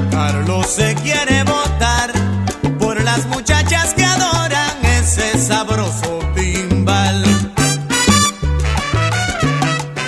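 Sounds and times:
salsa band playing: 0:00.0 - 0:10.0.

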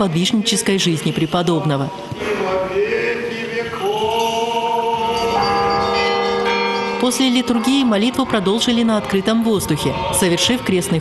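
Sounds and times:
church bells ringing: 0:04.0 - 0:11.0.

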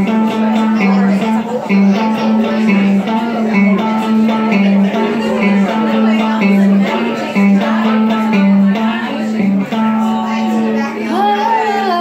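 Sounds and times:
electric guitar riff: 0:00.0 - 0:12.0.

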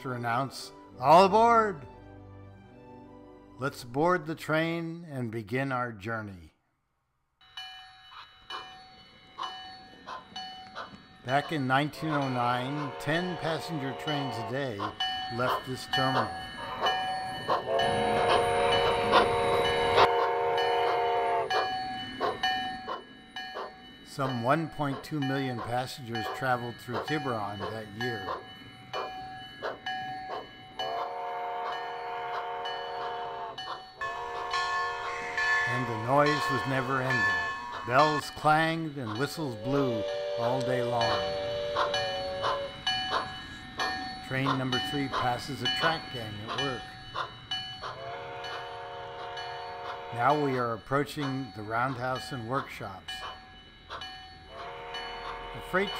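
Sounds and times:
locomotive bell ringing: 0:07.4 - 0:55.9
steam locomotive chime whistle: 0:12.1 - 0:14.8, 0:15.9 - 0:23.0, 0:30.8 - 0:43.6, 0:47.9 - 0:50.8, 0:53.2 - 0:55.9
higher tone: 0:34.0 - 0:42.8.

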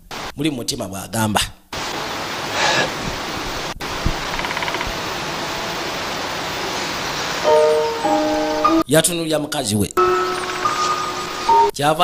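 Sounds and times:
steady rushing noise: 0:01.8 - 0:08.1
music with held chord: 0:07.4 - 0:08.8, 0:10.0 - 0:11.8.

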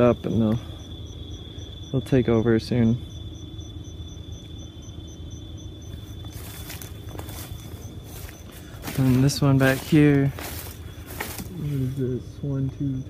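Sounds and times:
insect chirp pulsing: 0:00.0 - 0:13.0
insects buzzing: 0:00.0 - 0:13.0
footsteps through undergrowth: 0:05.9 - 0:12.8.

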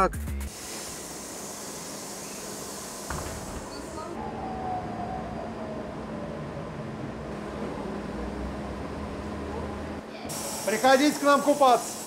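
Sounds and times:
bus interior hiss: 0:00.5 - 0:04.2, 0:10.2 - 0:12.0.

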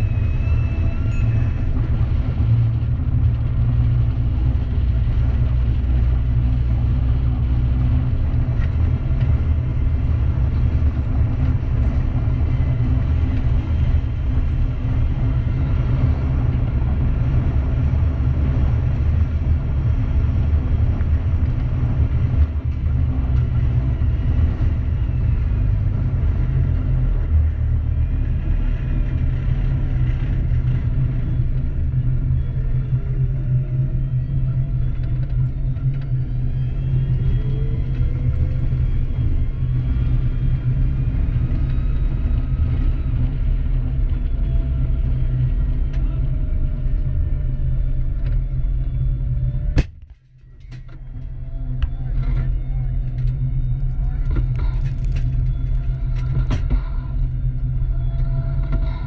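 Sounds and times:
faint whines: 0:00.0 - 0:59.0
tank engine rumbling: 0:00.0 - 0:59.0.

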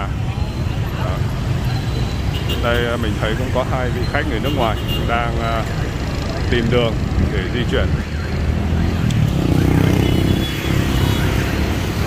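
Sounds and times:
scooters and cars driving past: 0:00.0 - 0:12.0.

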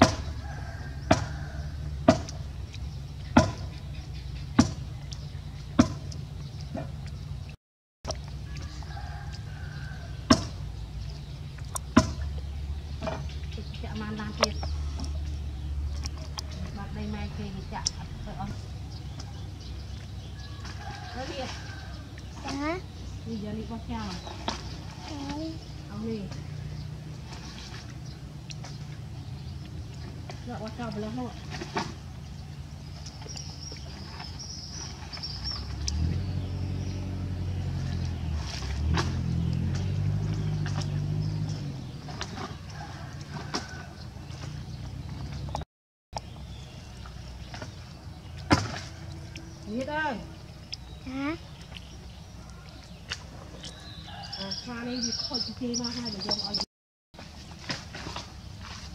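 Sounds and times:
low background rumble: 0:00.0 - 0:45.6
vehicle engine humming: 0:00.0 - 0:45.6, 0:46.2 - 0:56.5.

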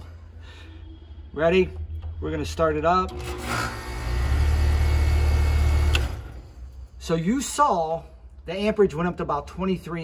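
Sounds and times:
compressor humming: 0:03.0 - 0:06.5
contactor click: 0:05.8 - 0:06.3.

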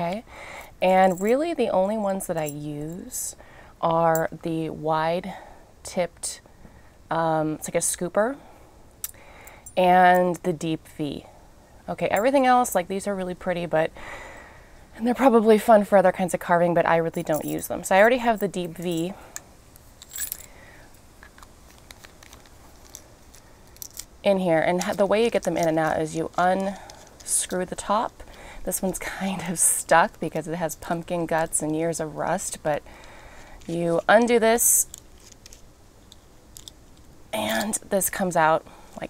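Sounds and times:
light metallic jingle: 0:00.9 - 0:03.2, 0:17.2 - 0:19.2, 0:20.0 - 0:20.6
small handling clicks: 0:21.2 - 0:24.1, 0:33.0 - 0:37.7.

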